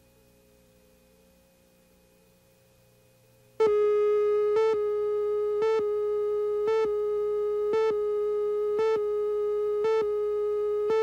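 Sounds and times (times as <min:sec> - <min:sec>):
faint hum: 0:00.0 - 0:11.0
loud steady reference tone: 0:03.6 - 0:11.0.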